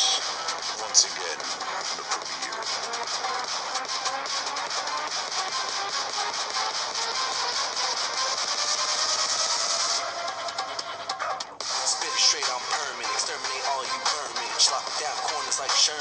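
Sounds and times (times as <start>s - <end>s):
instrumental rap beat: 0.0s - 16.0s.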